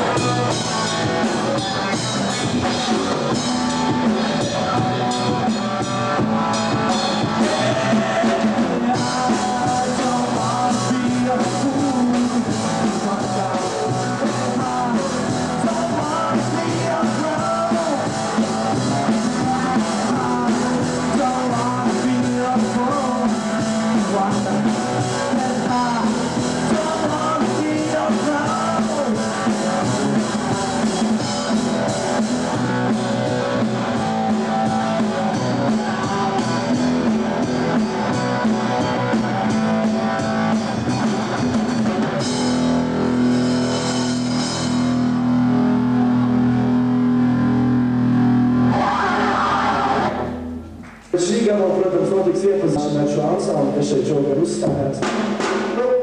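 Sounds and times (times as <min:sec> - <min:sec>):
electric guitar: 0:00.0 - 0:51.1
drum kit: 0:00.0 - 0:53.8, 0:54.4 - 0:56.0
bass guitar: 0:00.0 - 0:56.0.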